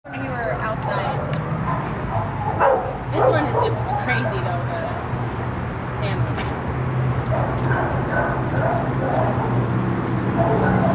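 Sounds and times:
dogs barking and yipping: 0:01.0 - 0:04.9, 0:07.2 - 0:10.9.

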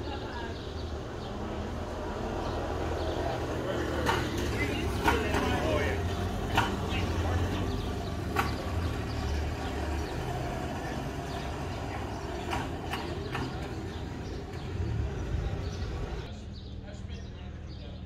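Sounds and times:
people talking in background: 0:00.0 - 0:18.0.

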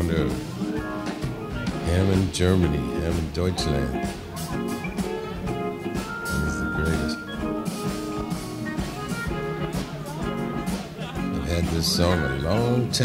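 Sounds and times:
jazz-blues band playing: 0:00.0 - 0:13.0.

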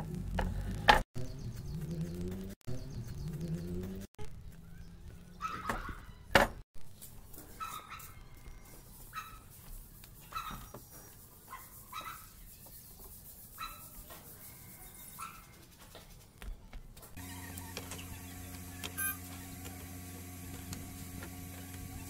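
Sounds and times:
low machine hum: 0:17.2 - 0:22.0
faint high squeaks: 0:18.8 - 0:19.2.

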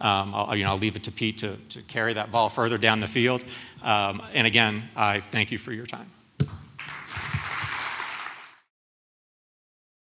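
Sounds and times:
audience applause: 0:06.8 - 0:08.7.

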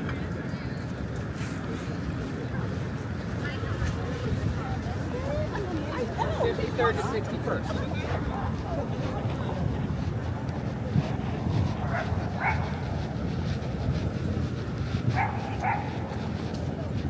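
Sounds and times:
passing voices: 0:00.0 - 0:17.0
traffic: 0:00.0 - 0:17.0
dog barking: 0:11.9 - 0:12.8, 0:15.2 - 0:16.0.

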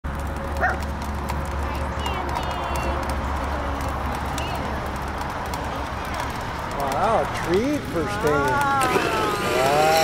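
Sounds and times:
scattered clicks: 0:00.1 - 0:10.0.

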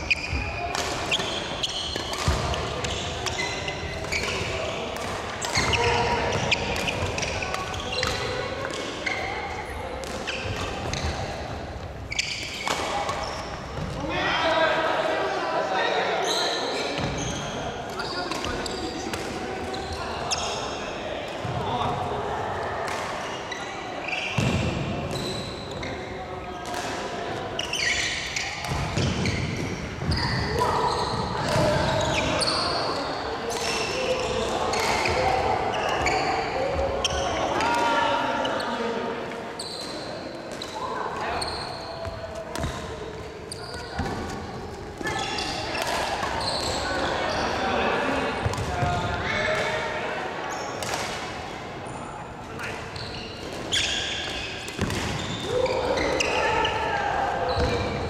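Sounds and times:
rackets hitting shuttlecock: 0:00.2 - 0:09.0, 0:17.9 - 0:19.8, 0:44.0 - 0:46.8, 0:53.4 - 0:56.3
shoes squeaking on wooden floor: 0:12.1 - 0:12.6.

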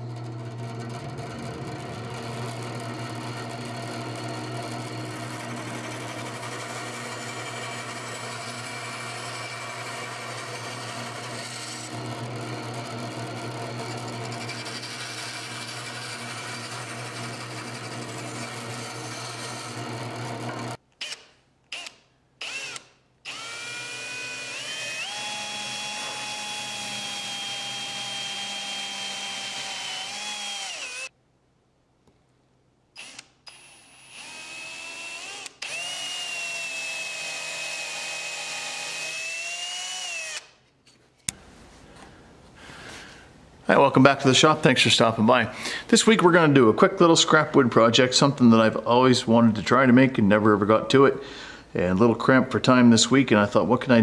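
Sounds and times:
bandsaw humming: 0:00.0 - 0:20.8, 0:21.8 - 0:31.1, 0:33.0 - 0:40.6
cordless drill whining: 0:00.2 - 0:31.1, 0:33.0 - 0:40.6.

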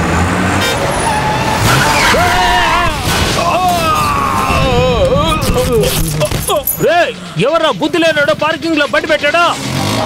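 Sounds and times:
road traffic: 0:00.0 - 0:10.0
car horn toot: 0:00.6 - 0:01.5.

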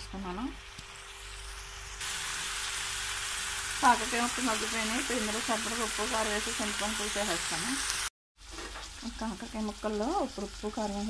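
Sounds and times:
vegetables sizzling in oil: 0:00.2 - 0:11.0.

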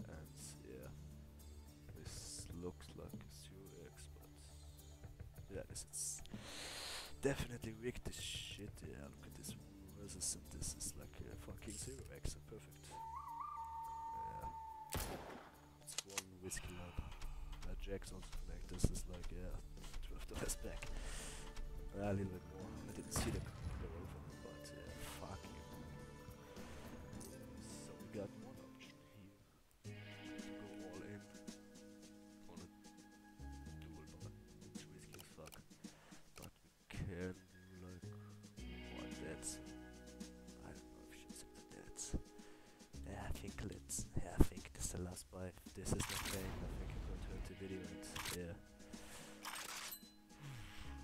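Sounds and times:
slot game background music: 0:15.8 - 0:29.3, 0:46.0 - 0:51.0.

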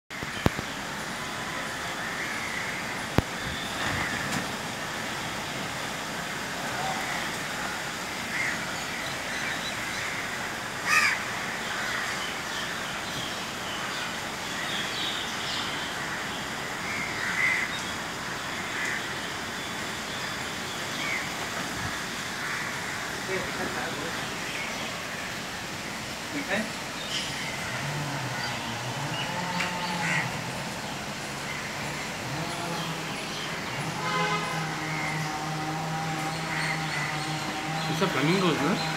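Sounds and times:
rain hissing: 0:00.2 - 0:38.9
crows cawing: 0:06.9 - 0:12.3, 0:16.0 - 0:17.8, 0:21.9 - 0:23.6, 0:28.3 - 0:30.5, 0:34.0 - 0:38.2.

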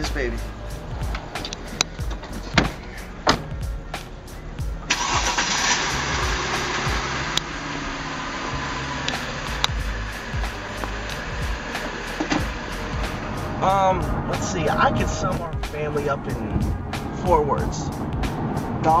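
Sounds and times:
background music with steady beat: 0:00.0 - 0:04.9, 0:05.8 - 0:07.6, 0:08.5 - 0:19.0
car engine starting and running: 0:00.0 - 0:19.0.

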